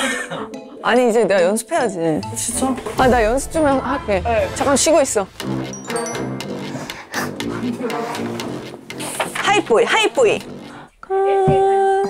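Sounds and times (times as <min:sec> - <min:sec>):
digital piano notes and chords: 0:00.4 - 0:10.9
woman's voice: 0:09.4 - 0:10.4, 0:11.0 - 0:12.0.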